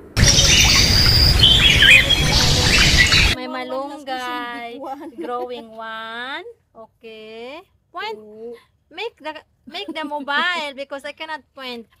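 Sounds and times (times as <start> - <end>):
small birds chirping: 0.0 - 3.4
steady rushing noise: 0.0 - 3.4.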